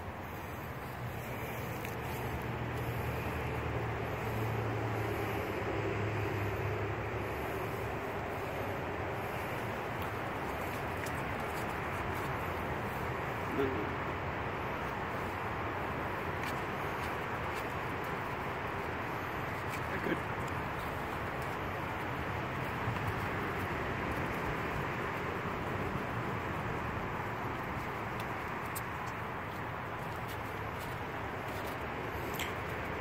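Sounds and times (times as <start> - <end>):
outdoor background noise: 0.0 - 33.0.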